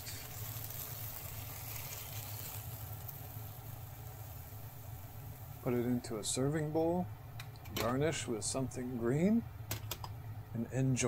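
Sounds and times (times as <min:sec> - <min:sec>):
faint sizzling: 0:00.0 - 0:11.0
kitchen hum and hiss: 0:00.0 - 0:11.0.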